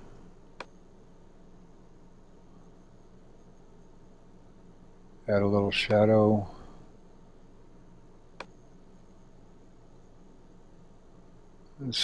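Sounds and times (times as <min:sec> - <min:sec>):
low electrical hum: 0:00.0 - 0:12.0
soft hiss: 0:00.0 - 0:12.0.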